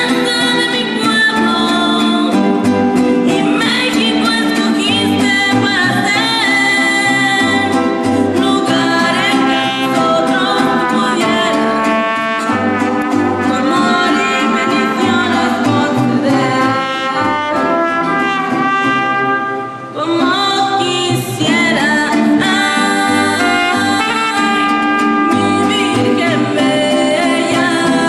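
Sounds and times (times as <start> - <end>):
guitar strumming: 0.0 - 28.0
brass: 9.1 - 20.2, 23.3 - 26.4
singing: 20.0 - 28.0.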